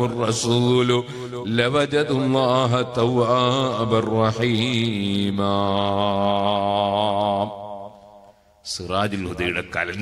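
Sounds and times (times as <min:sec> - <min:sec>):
man chanting melodic recitation: 0:00.0 - 0:10.0.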